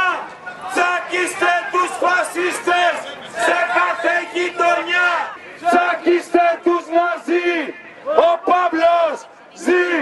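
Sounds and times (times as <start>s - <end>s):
crowd chanting slogan: 0.0s - 10.0s.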